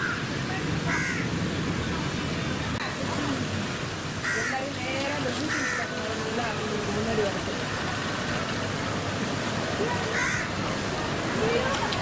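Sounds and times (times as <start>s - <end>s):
distant voices: 0.0s - 12.0s
outdoor background noise: 0.0s - 12.0s
harsh bird calls: 10.1s - 10.6s.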